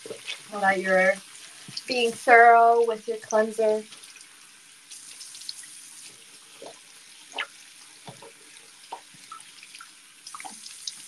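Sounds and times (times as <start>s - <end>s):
sink tap running: 6.6s - 11.0s.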